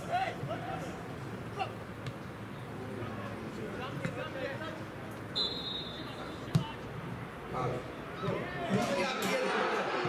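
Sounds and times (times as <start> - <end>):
referee's whistle blast: 5.4 - 6.1.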